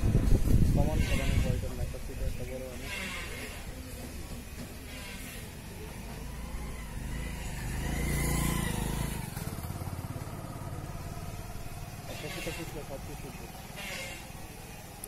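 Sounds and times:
faint voices: 0:00.0 - 0:08.0, 0:09.6 - 0:15.0
vehicle engine passing by: 0:02.8 - 0:15.0.

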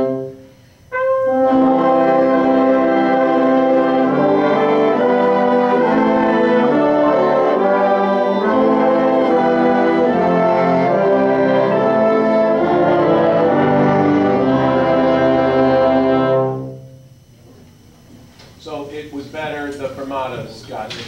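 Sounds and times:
orchestra strings sustained chords: 0:00.0 - 0:17.2.

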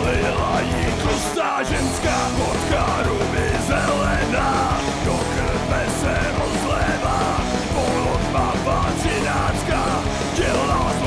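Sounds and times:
metal band playing: 0:00.0 - 0:11.0.

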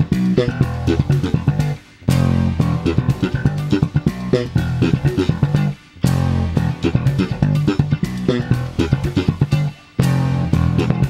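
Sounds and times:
slap bass riff: 0:00.0 - 0:11.0.

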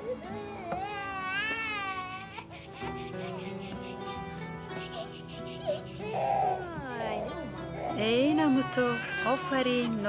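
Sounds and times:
infant crying: 0:00.2 - 0:09.9.

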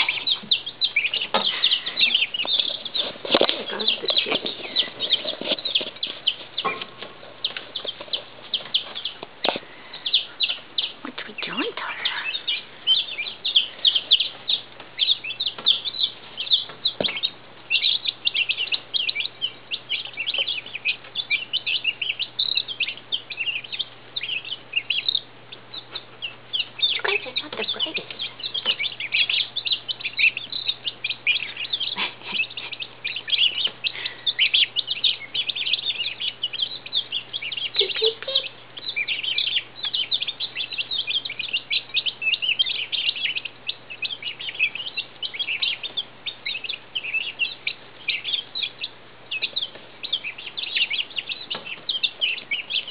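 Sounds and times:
chicks peeping: 0:00.0 - 0:52.9.

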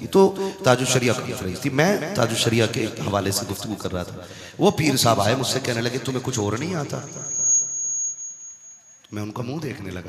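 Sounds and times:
high-pitched electronic tone: 0:06.5 - 0:09.0.

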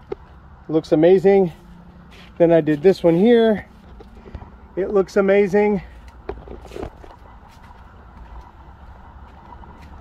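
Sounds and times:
footsteps on pavement: 0:00.0 - 0:00.5, 0:01.3 - 0:10.0
low outdoor rumble: 0:00.0 - 0:10.0.

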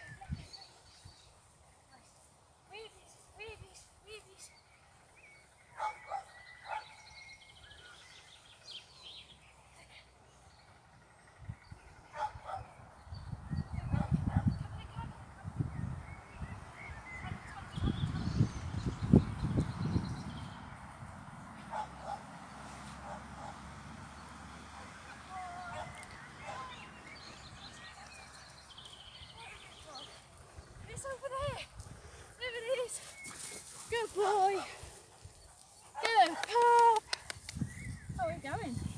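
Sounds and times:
dog barking: 0:12.2 - 0:12.7
wind buffeting microphone: 0:13.0 - 0:21.8, 0:36.2 - 0:38.9.

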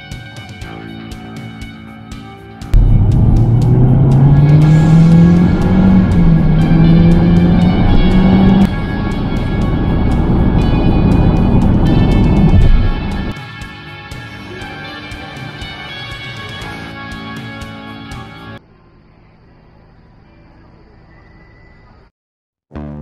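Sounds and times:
background music: 0:00.0 - 0:18.6
car engine accelerating: 0:02.8 - 0:13.3.

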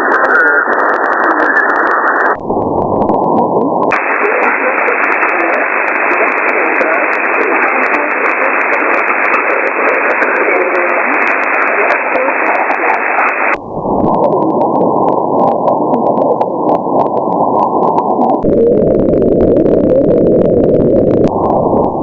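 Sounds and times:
faint radio crackle: 0:00.0 - 0:22.0
shortwave static hiss: 0:00.0 - 0:22.0.

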